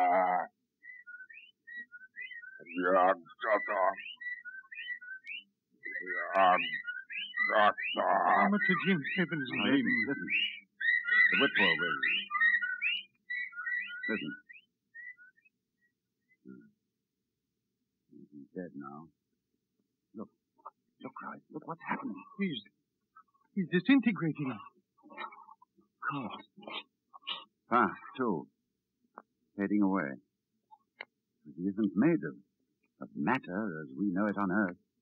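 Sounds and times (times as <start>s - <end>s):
whistled bird calls: 0.8s - 16.7s.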